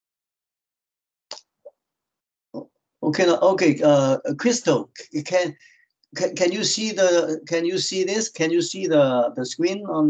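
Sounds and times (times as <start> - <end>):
man speaking: 3.0 - 5.6, 6.2 - 10.0.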